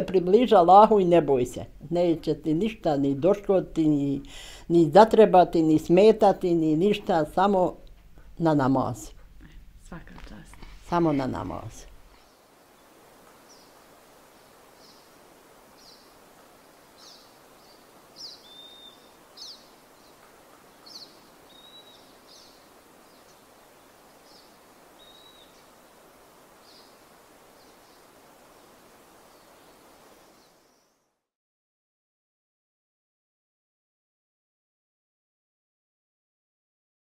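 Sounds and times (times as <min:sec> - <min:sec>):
faint background hiss: 0:00.0 - 0:31.1
small birds chirping: 0:09.4 - 0:31.0
whistled bird notes: 0:18.2 - 0:19.6, 0:20.9 - 0:22.6.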